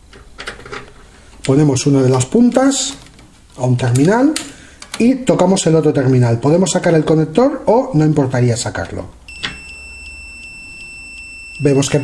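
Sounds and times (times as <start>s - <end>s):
multimeter continuity beep: 9.3s - 12.0s.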